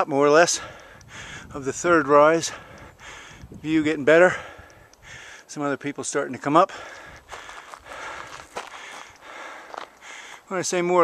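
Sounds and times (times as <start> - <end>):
footsteps crunching on gravel: 7.2 - 10.7.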